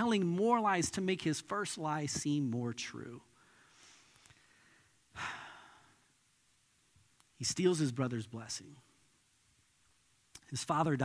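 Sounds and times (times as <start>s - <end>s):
man sighing: 5.1s - 6.0s.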